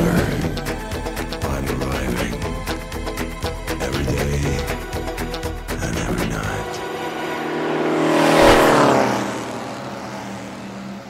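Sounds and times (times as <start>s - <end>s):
race car passing by: 5.8s - 11.0s.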